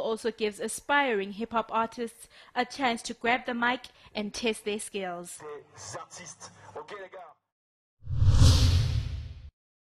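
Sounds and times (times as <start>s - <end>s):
whoosh with deep rumble: 8.1s - 9.5s.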